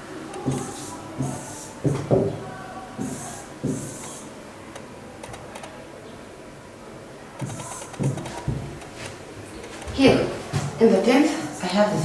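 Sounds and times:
stylus taps and scratches: 0.4s - 2.2s, 7.4s - 10.0s.

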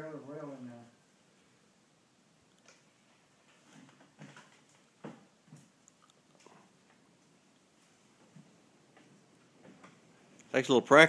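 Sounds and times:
wheelchair knocks and clunks: 3.5s - 5.7s.

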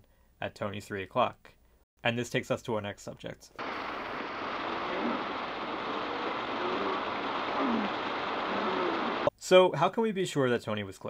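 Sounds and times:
steady hiss: 3.6s - 9.3s
faint voice-like glides: 4.6s - 9.3s.

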